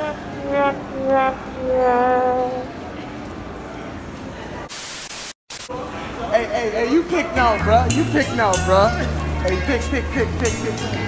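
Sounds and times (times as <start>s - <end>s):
static hiss bursts: 4.7s - 5.7s.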